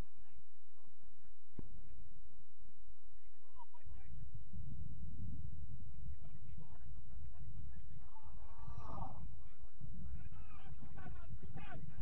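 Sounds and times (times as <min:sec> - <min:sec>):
wind rumble on microphone: 0:00.0 - 0:12.0
distant shouts of players: 0:06.3 - 0:12.0.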